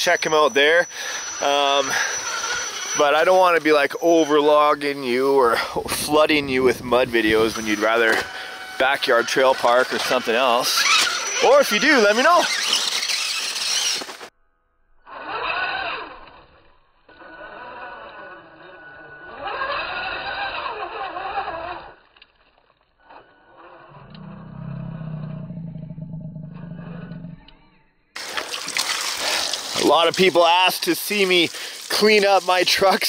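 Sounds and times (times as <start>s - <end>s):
hose water spraying: 0.0s - 14.2s, 28.2s - 33.0s
tyres on dirt: 0.0s - 14.3s, 15.1s - 24.5s, 28.2s - 33.0s
slowed electric motor whine: 0.0s - 27.8s.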